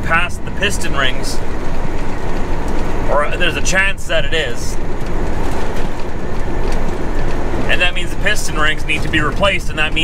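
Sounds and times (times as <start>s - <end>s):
diesel engine running: 0.0s - 10.0s
tyre and road noise: 0.0s - 10.0s.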